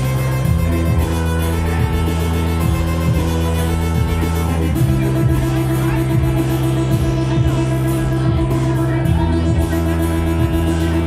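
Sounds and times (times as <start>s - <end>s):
looped rock music: 0.0s - 11.0s.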